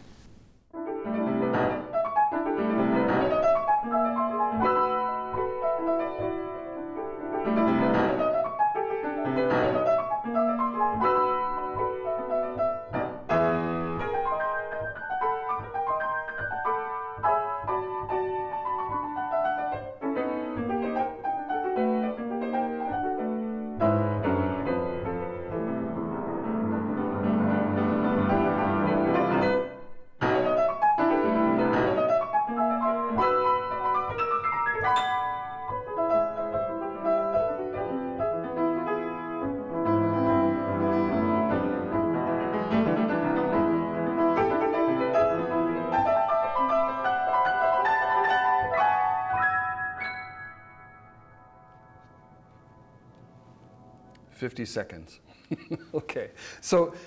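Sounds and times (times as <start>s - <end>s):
grand piano playing fast: 0.8s - 55.1s.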